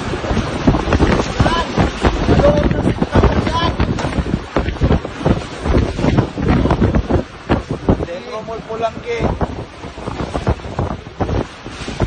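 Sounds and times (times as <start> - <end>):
strong wind gusts on microphone: 0.0 - 12.0.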